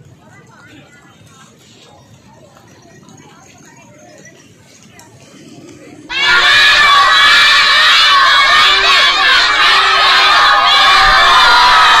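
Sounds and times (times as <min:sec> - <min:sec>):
children shouting and cheering: 0:06.1 - 0:12.0.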